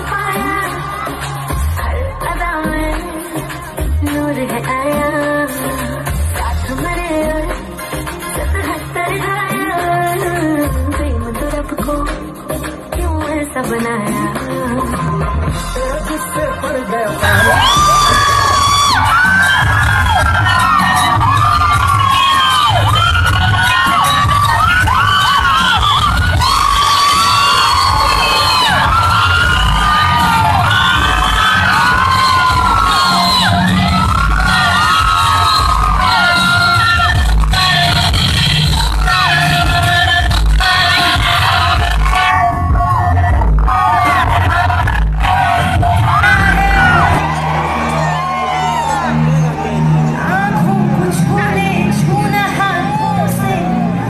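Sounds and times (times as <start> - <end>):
crowd cheering and screaming: 0.0 - 3.6, 17.1 - 54.0
live concert music with bass beat: 0.0 - 54.0.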